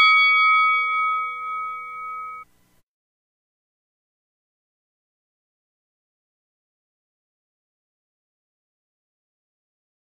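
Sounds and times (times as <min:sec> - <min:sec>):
metal bell ringing: 0:00.0 - 0:02.4.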